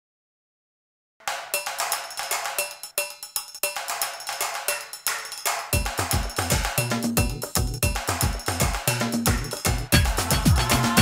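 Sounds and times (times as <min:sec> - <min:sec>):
rapid percussion strikes: 0:01.2 - 0:11.0
deep bass beats: 0:05.8 - 0:11.0.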